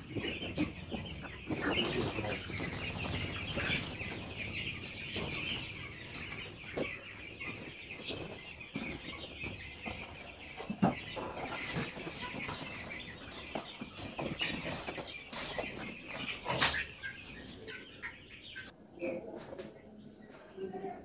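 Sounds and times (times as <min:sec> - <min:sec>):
chicks peeping and chirping: 0:00.0 - 0:21.0
wings flapping: 0:01.6 - 0:04.5.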